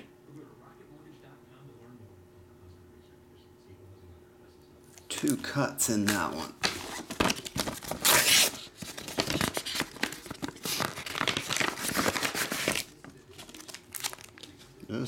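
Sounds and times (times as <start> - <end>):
paper envelope rustling and crinkling: 6.1 - 14.8.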